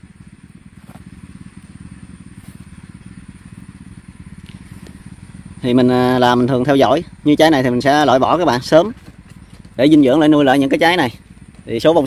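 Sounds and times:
small engine running: 0:00.0 - 0:12.0.

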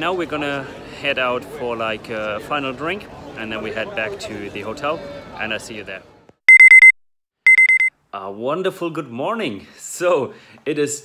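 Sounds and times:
digital alarm clock beeping: 0:06.5 - 0:07.9.

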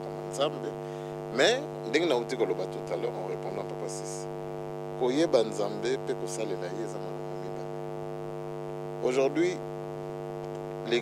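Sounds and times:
electrical mains hum: 0:00.0 - 0:11.0
man speaking: 0:00.2 - 0:04.3, 0:05.0 - 0:07.8, 0:09.0 - 0:09.6.

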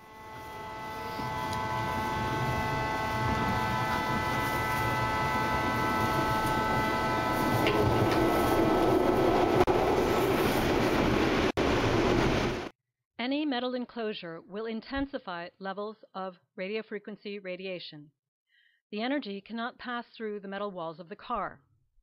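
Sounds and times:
train rumble in tunnel: 0:00.1 - 0:12.7.

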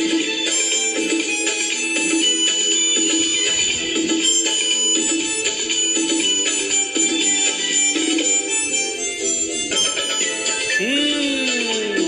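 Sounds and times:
plucked string accompaniment: 0:00.0 - 0:12.0
harmonica melody: 0:00.5 - 0:12.0.

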